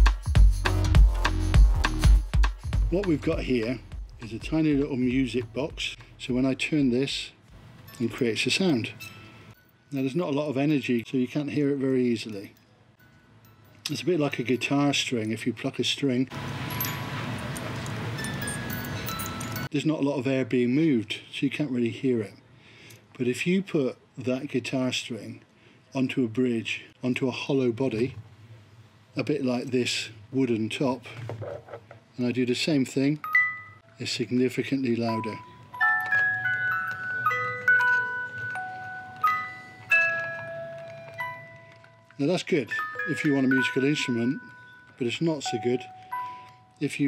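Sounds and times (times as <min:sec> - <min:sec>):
music box playing single notes: 0:18.1 - 0:19.7, 0:33.2 - 0:46.9.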